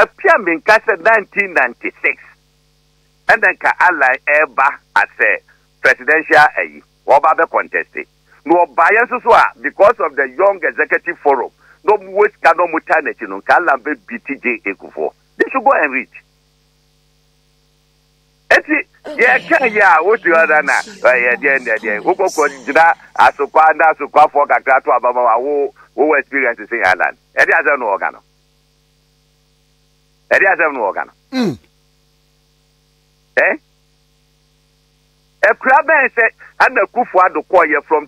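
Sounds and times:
faint mains hum: 0.0s - 38.0s
person saying eh: 19.1s - 23.7s, 31.3s - 31.6s
person speaking: 19.1s - 24.2s, 31.3s - 31.7s.

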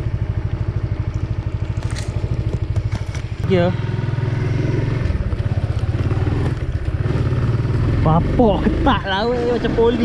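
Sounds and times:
motorcycle engine pulling away: 0.0s - 10.0s.

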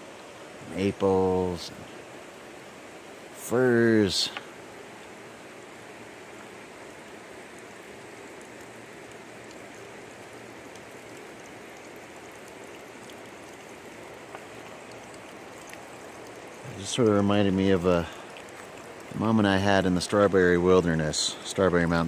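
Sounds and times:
flowing river water: 0.0s - 22.0s.

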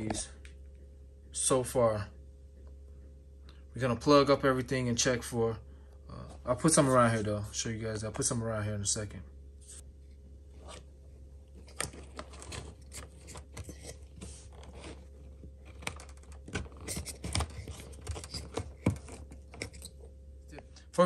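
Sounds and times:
steady low hum: 0.0s - 21.0s
plastic clicks and scrapes: 11.6s - 20.1s.

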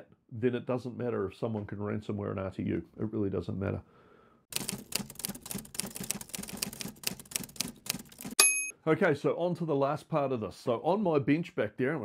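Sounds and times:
typewriter keys clattering: 4.5s - 8.4s.

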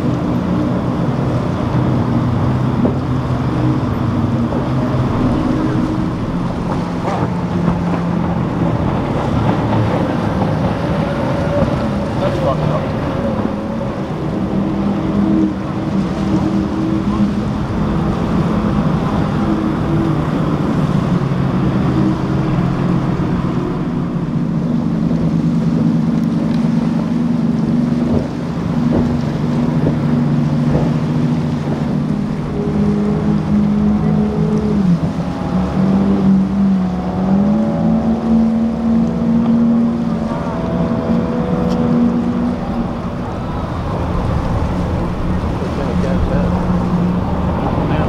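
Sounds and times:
outboard engines running at speed: 0.0s - 48.0s
wind: 0.0s - 48.0s.

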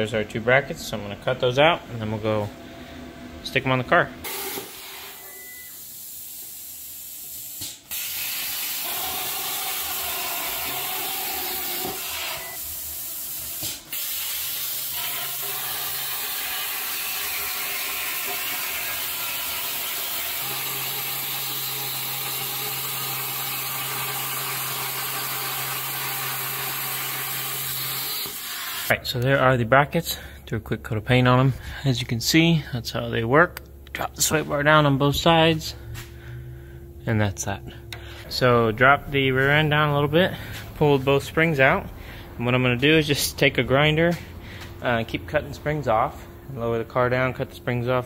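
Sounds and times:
plasma cutter hissing: 4.3s - 28.9s
low steady hum: 28.9s - 48.0s.

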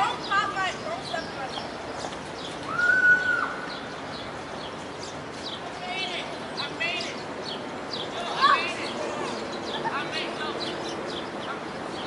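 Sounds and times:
drawn-out high bird call: 0.0s - 12.0s
small birds chirping: 0.0s - 12.0s.

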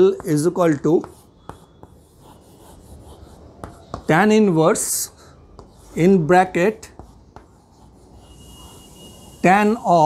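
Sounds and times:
chalk scratching on blackboard: 0.0s - 10.0s.

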